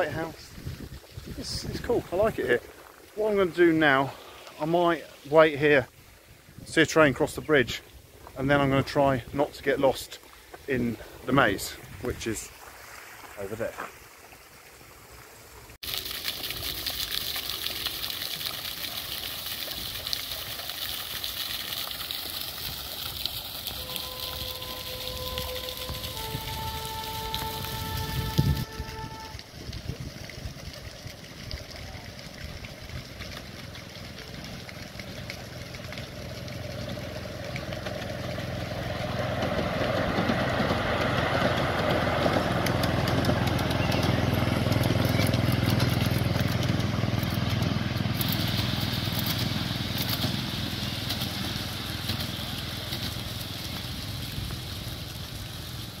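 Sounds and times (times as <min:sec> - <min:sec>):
miniature train running on rails: 0:23.6 - 0:56.0.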